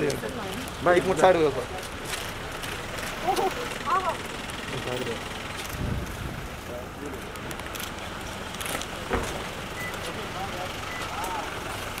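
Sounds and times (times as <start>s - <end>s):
cars idling: 0.0s - 12.0s
short high beeps: 9.8s - 10.0s.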